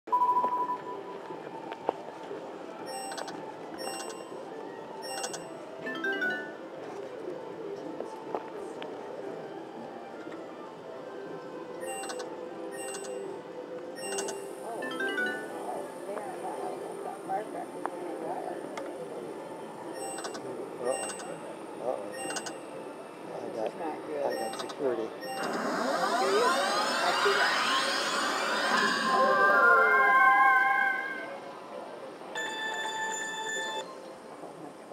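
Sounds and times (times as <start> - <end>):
electronic beep: 2.9 - 4.3, 5.0 - 5.5, 11.8 - 13.2, 14.0 - 14.5, 20.0 - 21.4, 22.1 - 22.6, 24.3 - 31.0, 32.4 - 34.0
slot machine bonus music: 2.9 - 4.3, 5.0 - 6.6, 11.8 - 13.2, 14.0 - 15.7, 22.1 - 22.6
high electronic chimes: 24.4 - 31.0.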